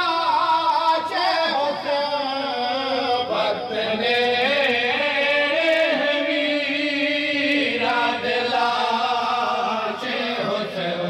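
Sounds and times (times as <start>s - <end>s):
person chanting a lament: 0.0s - 11.0s.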